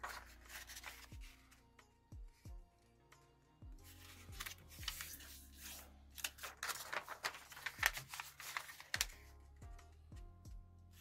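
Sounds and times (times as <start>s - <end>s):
paper rustling and creasing: 0.0s - 1.6s, 3.8s - 9.3s
soft background music: 0.0s - 11.0s.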